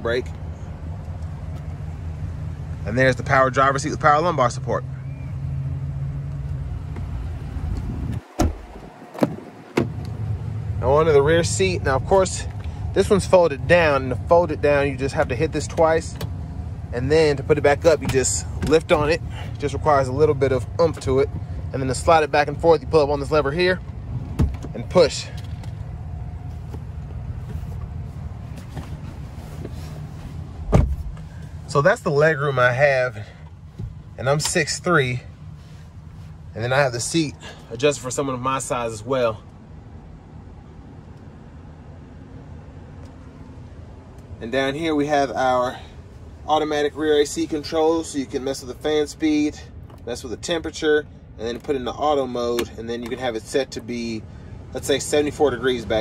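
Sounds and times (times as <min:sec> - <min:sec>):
wind rumble: 0:07.2 - 0:10.1
person dropping onto seat thump: 0:30.6 - 0:31.2.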